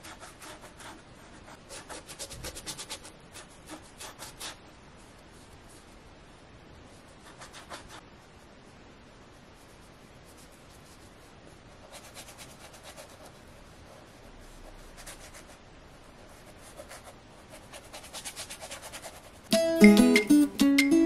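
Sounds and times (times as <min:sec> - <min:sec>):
paintbrush scrubbing canvas: 0:00.0 - 0:06.0, 0:06.9 - 0:08.0, 0:09.5 - 0:19.5
acoustic guitar music: 0:19.5 - 0:21.0.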